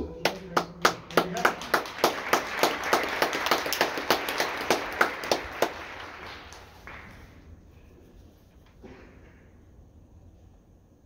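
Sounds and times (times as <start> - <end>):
audience applause: 0.2 - 7.4
loud claps close by: 0.2 - 7.4.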